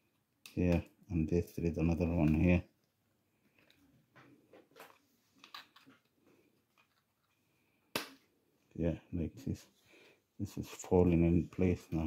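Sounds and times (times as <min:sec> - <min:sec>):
plastic parts clicking and rustling: 0:04.6 - 0:07.5.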